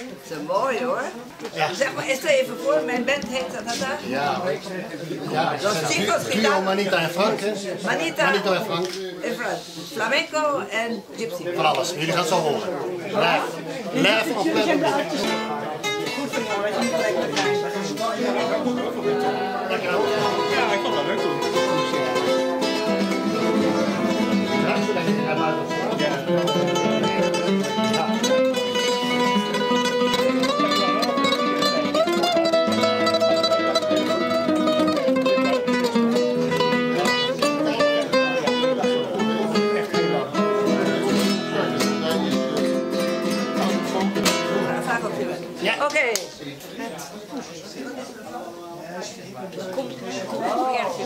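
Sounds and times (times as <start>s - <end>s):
flamenco acoustic guitar: 0.0s - 46.4s
people talking: 0.0s - 51.0s
voices: 0.0s - 51.0s.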